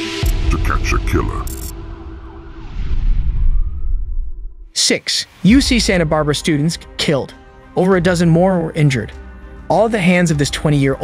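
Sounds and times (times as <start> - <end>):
deep bass rumble: 0.2 - 4.7
distorted voice fragment: 0.5 - 1.5.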